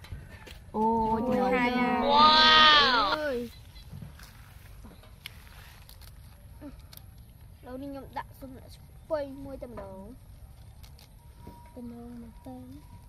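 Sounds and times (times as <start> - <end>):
drawn-out vocal call: 1.2 - 3.5.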